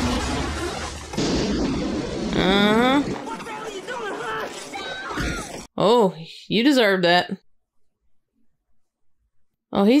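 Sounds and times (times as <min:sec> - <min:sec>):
loud crash: 0:00.0 - 0:03.9.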